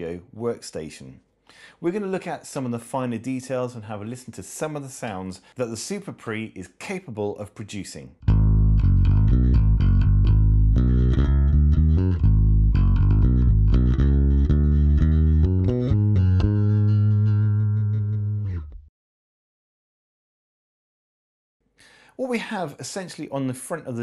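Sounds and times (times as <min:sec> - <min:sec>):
electric bass guitar plucked notes: 0:08.2 - 0:18.9.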